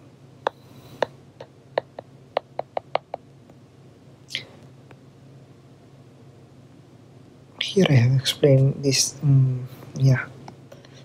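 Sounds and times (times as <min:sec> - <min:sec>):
stylus tapping on glass screen: 0:00.4 - 0:03.2.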